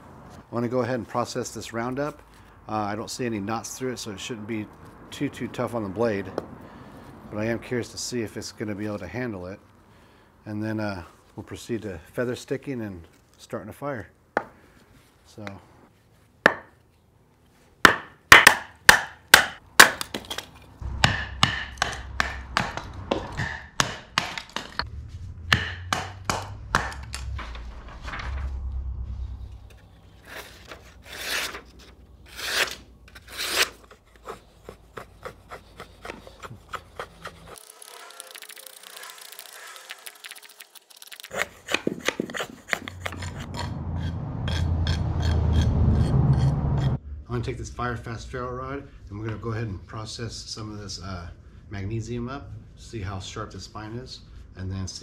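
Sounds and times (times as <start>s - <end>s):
wood splitting: 17.8s - 24.8s, 32.3s - 43.5s
blade shaving wood: 30.2s - 44.6s.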